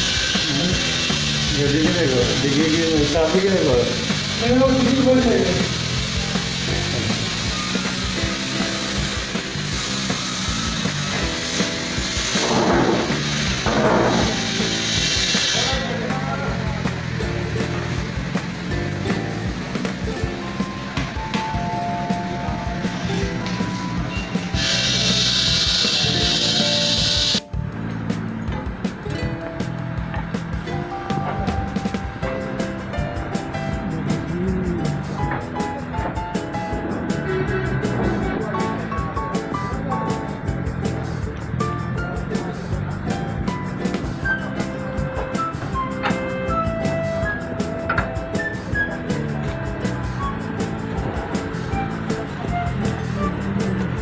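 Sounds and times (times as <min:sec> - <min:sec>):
song with steady beat: 0:03.9 - 0:54.0
person singing: 0:33.7 - 0:35.4.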